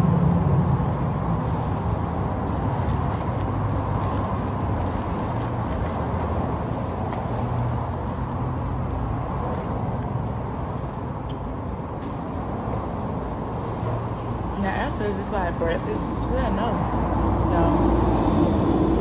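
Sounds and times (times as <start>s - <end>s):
low vehicle rumble: 0.0s - 14.8s
food handled and eaten: 0.3s - 11.8s.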